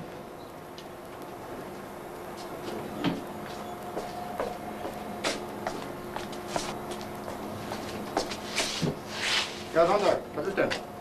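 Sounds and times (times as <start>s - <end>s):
steady low hum: 0.0s - 11.0s
noisy shuffle: 1.2s - 11.0s.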